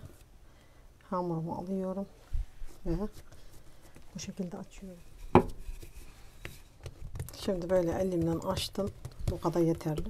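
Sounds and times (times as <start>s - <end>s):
dough being pressed by hand: 2.9s - 10.0s
rolling pin knocking on countertop: 5.3s - 5.6s.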